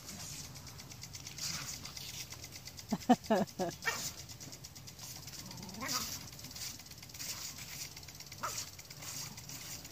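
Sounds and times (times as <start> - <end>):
lawn sprinkler hissing: 0.0 - 9.9.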